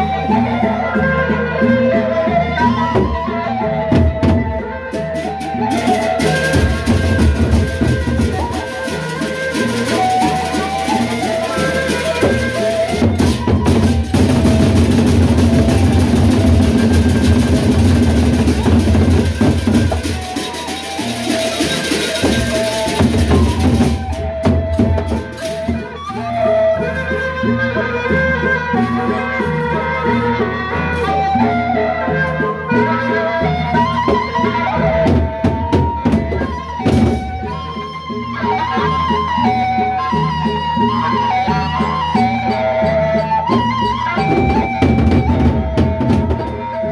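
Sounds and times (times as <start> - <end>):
wind instrument melody: 0.0 - 46.9
large drums beaten with sticks: 3.9 - 25.9, 34.9 - 37.6, 43.6 - 46.9.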